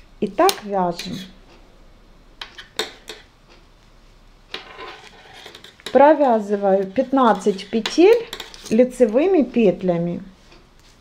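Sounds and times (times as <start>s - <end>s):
yarn and fabric rustling: 4.8s - 11.0s.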